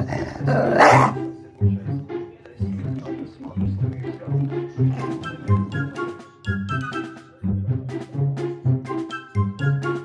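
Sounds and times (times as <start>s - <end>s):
dog growling: 0.0s - 1.3s, 4.8s - 5.7s
dog snarling: 0.0s - 1.3s, 4.8s - 5.3s
background music with low beat: 0.1s - 10.0s.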